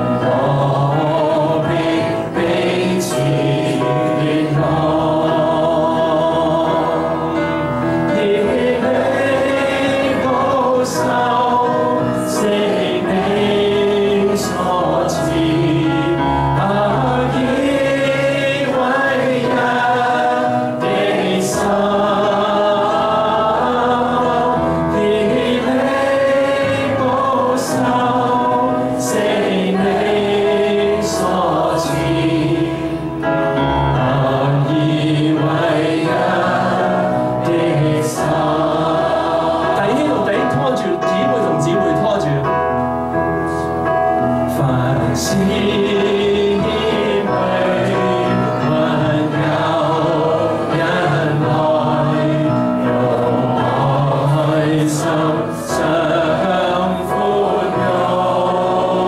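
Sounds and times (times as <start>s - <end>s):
choir singing worship song: 0.0s - 59.0s
man singing into a microphone: 44.5s - 49.4s.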